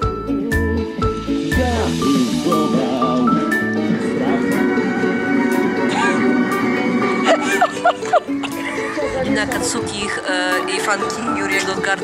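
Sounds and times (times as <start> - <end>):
background music melody of held notes: 0.0 - 12.0.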